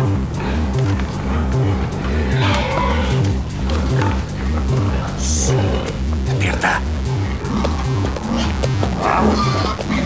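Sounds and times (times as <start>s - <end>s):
pig noises: 0.0s - 6.0s, 6.7s - 10.0s
music with pulsing low beat: 0.0s - 10.0s.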